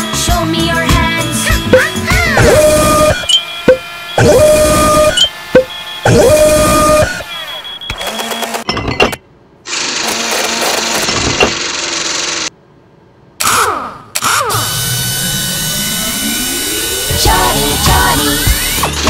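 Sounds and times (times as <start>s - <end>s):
background music: 0.0s - 2.7s, 17.1s - 19.0s
cartoon machine whirring and clatter: 0.8s - 8.7s, 9.7s - 12.5s, 13.4s - 19.0s
sweeping tones: 15.2s - 19.0s.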